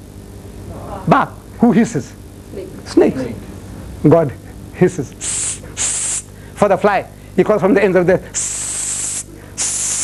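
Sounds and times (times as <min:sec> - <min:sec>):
man hissing through teeth: 0:05.2 - 0:06.3, 0:08.4 - 0:10.0.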